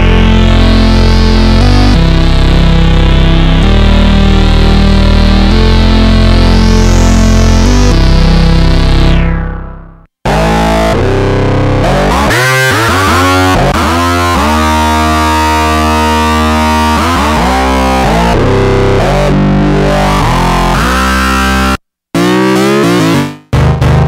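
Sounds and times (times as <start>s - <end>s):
analog synthesizer long notes: 0.0s - 24.0s.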